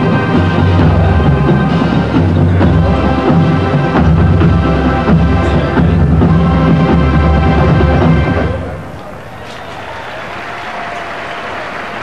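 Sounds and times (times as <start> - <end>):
marching band playing: 0.0 - 8.9
stadium crowd applauding: 9.0 - 12.0.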